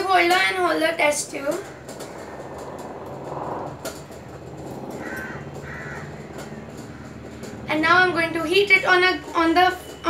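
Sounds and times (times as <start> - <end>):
bird calling: 1.6 - 7.6.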